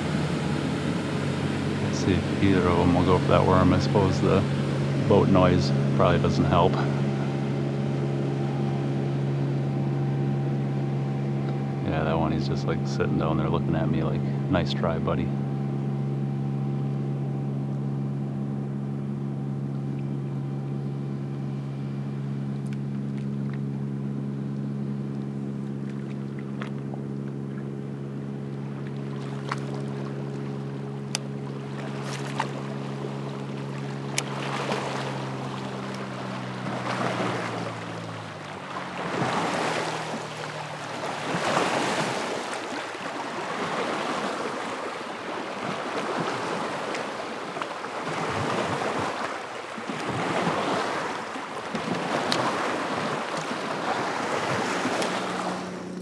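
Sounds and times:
waves slapping against kayak: 0:00.0 - 0:10.6, 0:11.2 - 0:15.4, 0:28.5 - 0:56.0
motorboat engine droning: 0:00.0 - 0:56.0.

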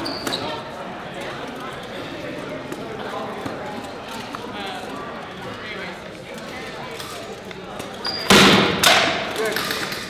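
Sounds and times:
short high squeak: 0:00.0 - 0:00.6, 0:08.0 - 0:08.3
spectators murmuring: 0:00.0 - 0:10.0.

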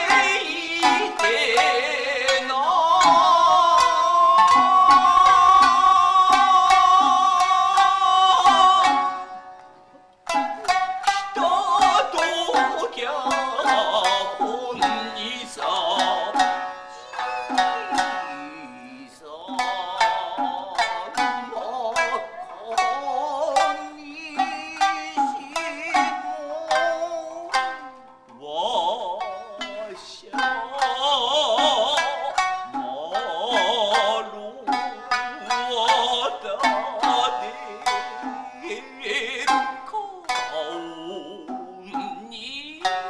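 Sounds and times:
person singing high held notes: 0:00.0 - 0:09.5, 0:11.1 - 0:27.8, 0:28.4 - 0:43.0
shamisen plucked: 0:00.0 - 0:43.0.

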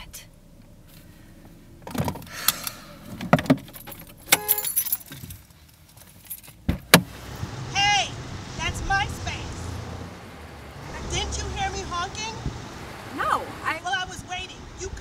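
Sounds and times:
car keys jangling: 0:01.9 - 0:06.7.

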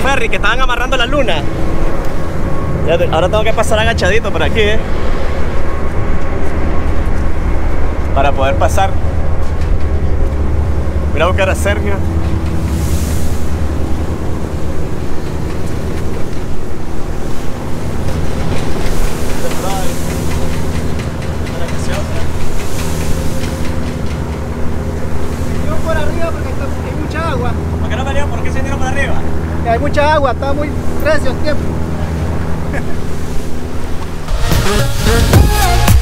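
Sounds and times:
wind buffeting microphone: 0:00.0 - 0:34.3
ferry engine droning: 0:00.0 - 0:36.0
waves washing along hull: 0:00.0 - 0:36.0.

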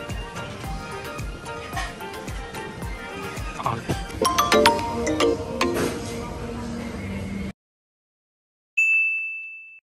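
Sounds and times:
bright bell ding: 0:08.8 - 0:09.8.

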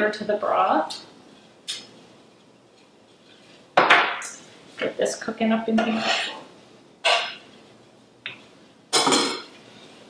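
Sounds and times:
kitchen utensils clattering: 0:05.8 - 0:07.4, 0:08.9 - 0:09.6.

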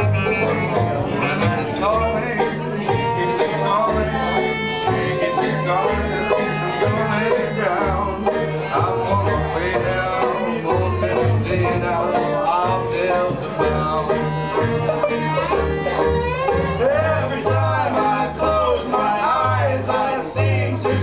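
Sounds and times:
acoustic guitar: 0:00.0 - 0:21.0
banjo picking: 0:00.0 - 0:21.0
fiddle: 0:00.0 - 0:21.0
upright bass: 0:00.0 - 0:21.0.

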